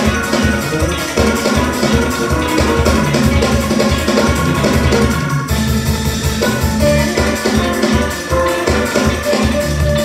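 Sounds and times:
music with steady drum beat: 0.0s - 10.0s.

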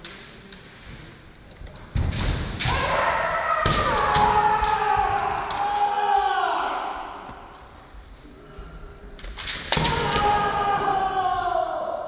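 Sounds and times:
person shouting: 2.7s - 7.3s, 9.8s - 12.0s.

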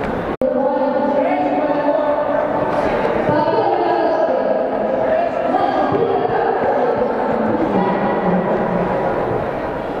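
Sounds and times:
chatter of many voices: 0.4s - 10.0s.

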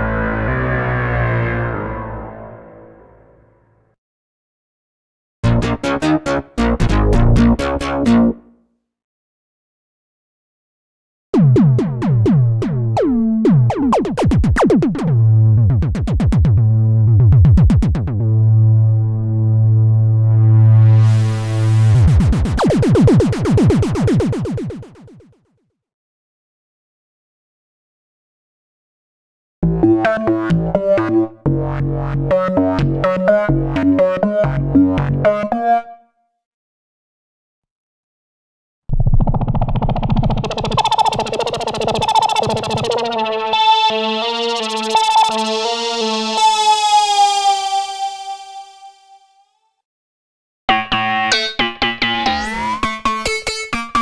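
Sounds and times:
synthesizer bass note: 11.4s - 25.4s, 38.9s - 48.7s.

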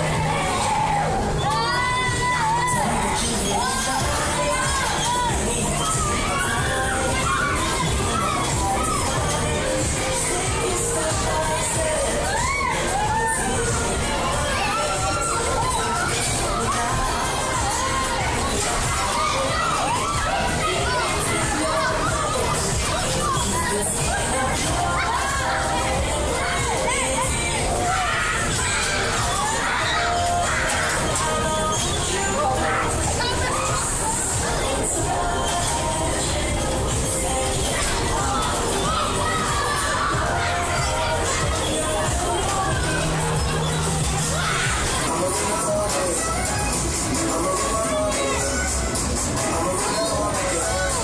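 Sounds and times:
children shouting and cheering: 0.0s - 51.0s
crowd hubbub: 0.0s - 51.0s
loud fairground din: 0.0s - 51.0s.

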